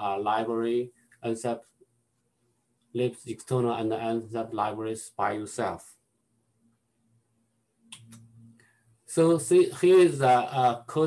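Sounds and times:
faint sharp clicks: 7.9s - 8.7s.

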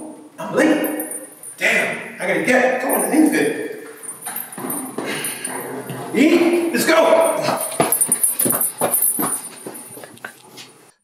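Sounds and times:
small bells jingling: 0.7s - 10.4s
quick footsteps: 6.7s - 10.8s.

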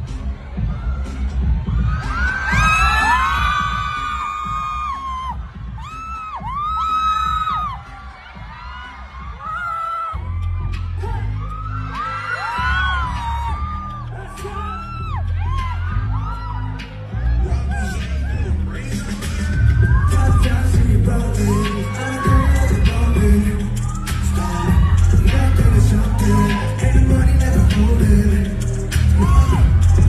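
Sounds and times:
audience screaming: 0.0s - 30.0s
pop music with heavy bass beat: 0.0s - 30.0s.

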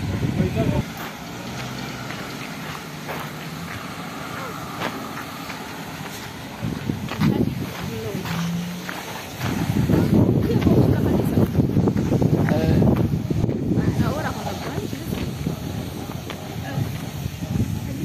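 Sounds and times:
car passing on road: 0.0s - 17.8s
wind buffeting microphone: 0.0s - 18.0s
faint voices: 0.3s - 18.0s.

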